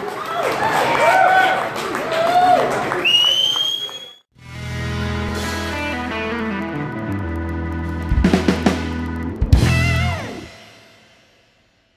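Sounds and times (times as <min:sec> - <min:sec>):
rising whistle: 0:03.0 - 0:04.3
music with bass and guitar: 0:04.4 - 0:11.0.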